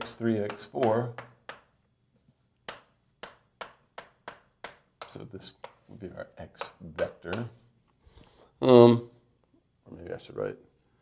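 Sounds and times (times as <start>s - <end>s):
chalk tapping on board: 0.0s - 7.6s.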